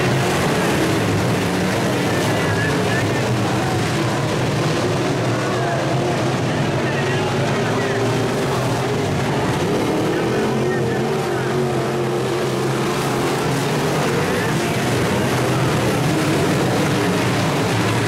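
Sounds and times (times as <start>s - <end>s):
race car engines droning: 0.0s - 18.0s.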